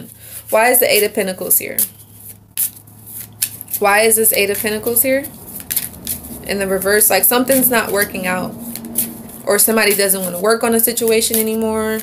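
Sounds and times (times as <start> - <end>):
cards being shuffled: 1.8 - 12.0.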